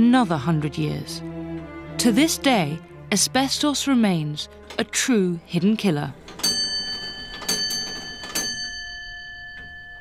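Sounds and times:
clock bell striking: 6.2 - 10.0.

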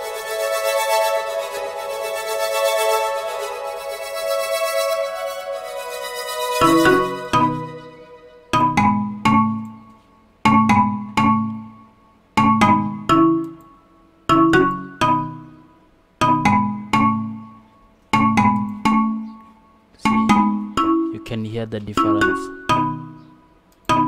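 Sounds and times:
synthesized marimba chords: 0.0 - 24.0.

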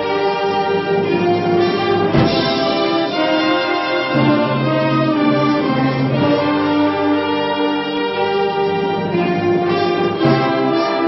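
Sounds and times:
wind band brass chords: 0.0 - 11.0
percussion hit: 2.0 - 5.8.

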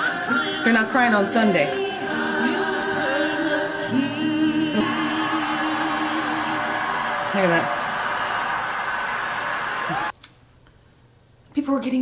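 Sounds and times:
women's voices singing: 0.0 - 8.1
gospel choir singing: 0.0 - 10.1
crowd cheering and applause: 4.0 - 10.1.

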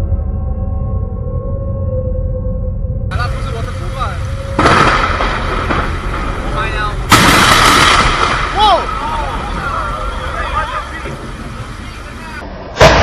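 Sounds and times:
thunder cracking and rumbling: 3.1 - 13.0.

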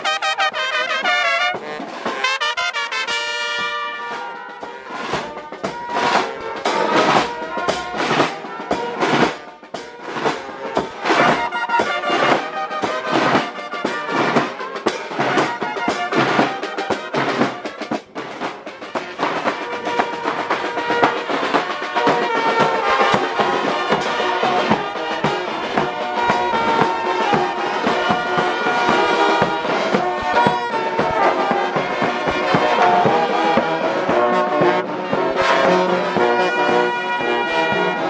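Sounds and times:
brass band music: 0.0 - 38.0
steady drum beat: 0.0 - 38.0.

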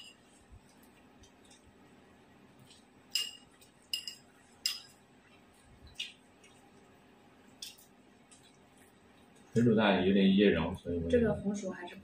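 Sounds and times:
utensils clinking on porcelain bowl: 3.1 - 5.0.

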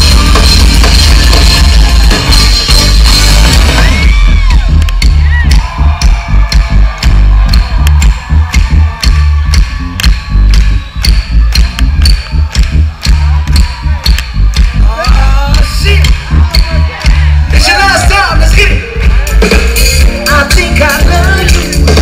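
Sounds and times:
loud live concert music: 0.0 - 22.0.

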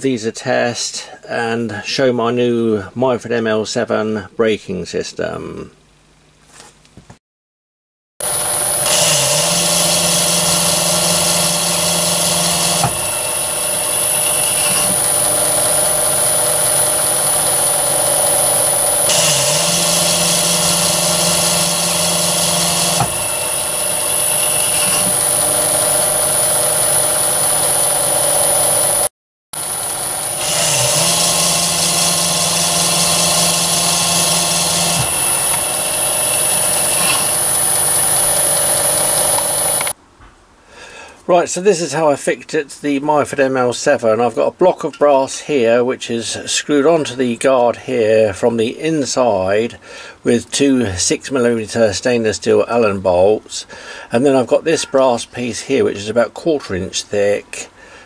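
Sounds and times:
low hum with harsh hiss: 0.0 - 7.1
lathe whining: 8.2 - 40.0.

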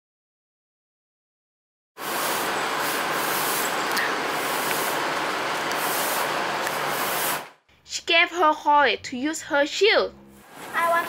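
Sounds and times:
steady hiss: 2.0 - 7.5.

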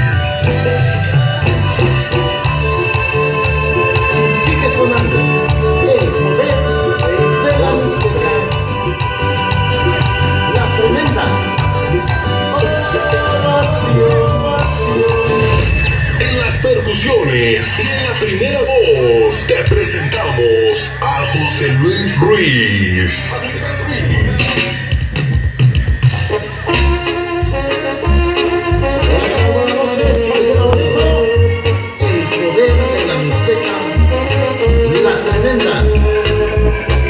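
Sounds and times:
brass horns holding long notes: 0.0 - 20.1, 26.2 - 37.0
bass line: 0.0 - 37.0
live band instrumental music: 0.0 - 37.0.

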